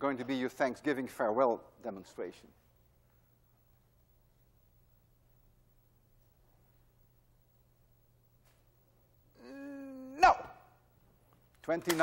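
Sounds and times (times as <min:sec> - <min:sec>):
man drawing out a no: 0:09.3 - 0:10.7.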